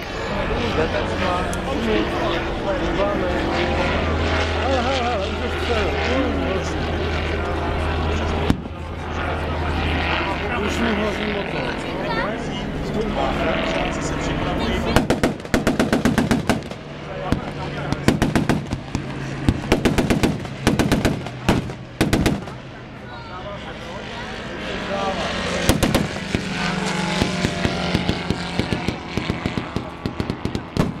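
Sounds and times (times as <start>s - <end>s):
aircraft engine drone: 0.0s - 31.0s
automatic gunfire bursts: 19.7s - 22.5s.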